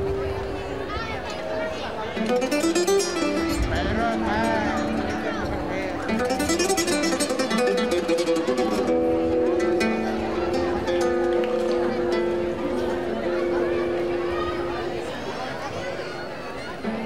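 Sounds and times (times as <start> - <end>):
flamenco guitar playing: 0.0 - 0.9, 2.1 - 15.3.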